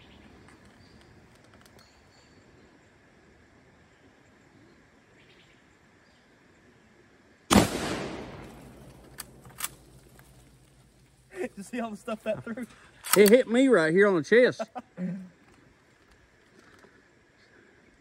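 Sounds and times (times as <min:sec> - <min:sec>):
rifle shot: 0:07.5 - 0:10.1
rifle bolt clicks: 0:07.8 - 0:09.9, 0:13.0 - 0:13.4.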